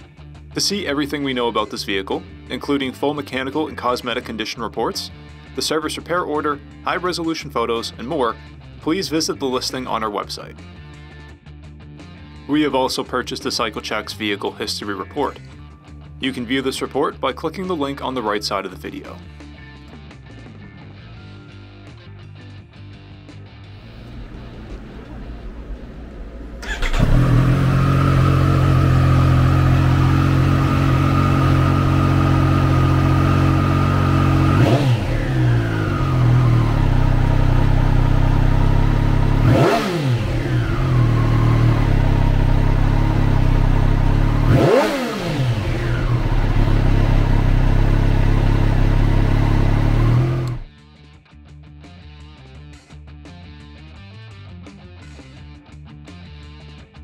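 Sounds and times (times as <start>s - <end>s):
motorcycle engine revving: 23.8s - 50.7s
motorcycle engine idling: 23.9s - 50.7s.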